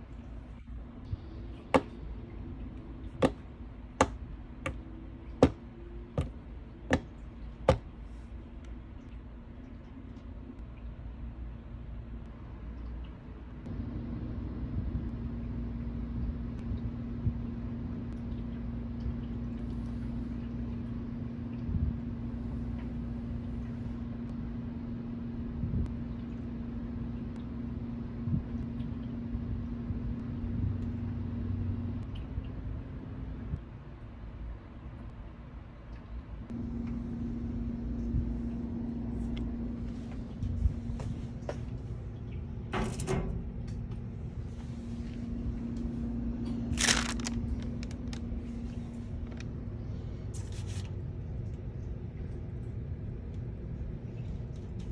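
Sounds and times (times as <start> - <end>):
low electrical hum: 0.0 - 54.9
low rumble: 36.4 - 54.9.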